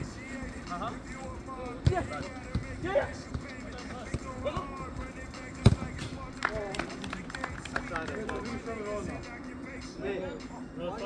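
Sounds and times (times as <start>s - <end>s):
players calling out: 0.2s - 7.3s.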